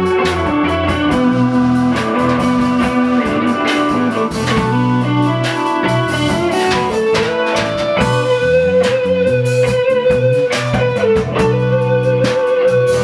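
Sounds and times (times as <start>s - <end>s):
blues-rock band playing: 0.0s - 13.0s
electric guitar: 0.0s - 13.0s.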